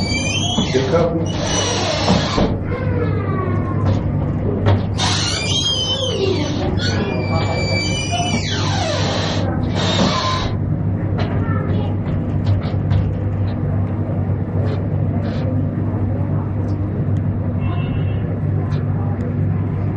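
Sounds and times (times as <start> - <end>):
equipment humming: 0.0 - 19.9.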